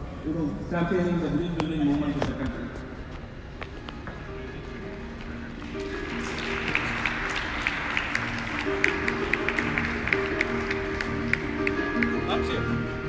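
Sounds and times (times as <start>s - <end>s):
background music: 0.0s - 13.0s
audience applause: 5.4s - 12.8s.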